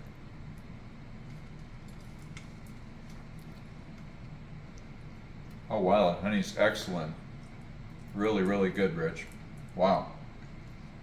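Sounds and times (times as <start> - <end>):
low room hum: 0.0 - 11.0
person chewing biscuit: 1.2 - 5.7.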